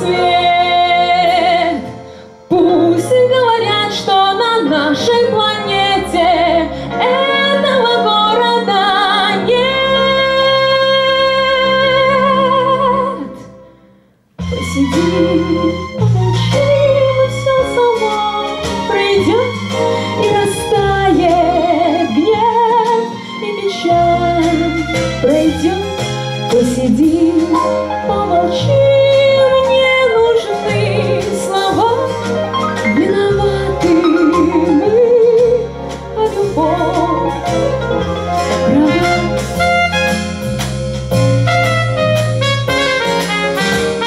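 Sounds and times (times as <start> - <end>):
woman singing pop ballad: 0.0 - 1.9, 2.5 - 13.4, 20.2 - 37.7
instrumental accompaniment: 0.0 - 44.0.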